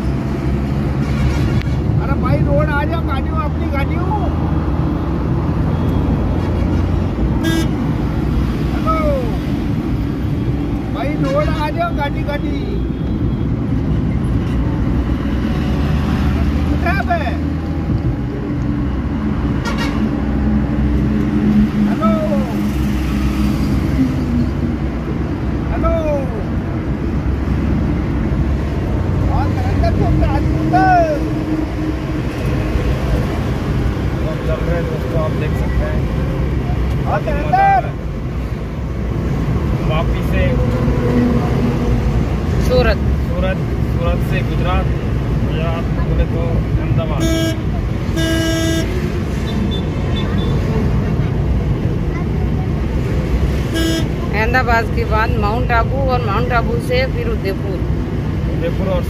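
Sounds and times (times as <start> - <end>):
tyre and road noise: 0.0 - 59.0.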